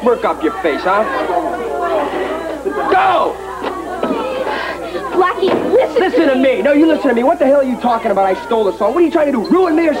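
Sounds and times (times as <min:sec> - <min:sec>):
people arguing loudly: 0:00.0 - 0:10.0.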